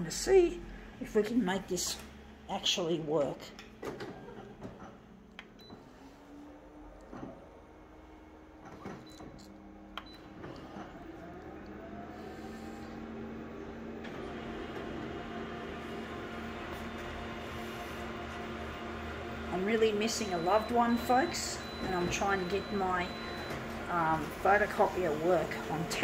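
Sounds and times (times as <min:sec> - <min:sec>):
photocopier motors whining and humming: 0:03.7 - 0:26.0
photocopier printing whirr: 0:03.7 - 0:26.0.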